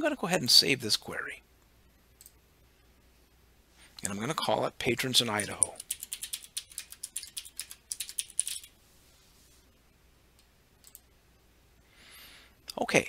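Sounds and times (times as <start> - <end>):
keyboard typing: 5.2 - 8.8, 10.8 - 11.1.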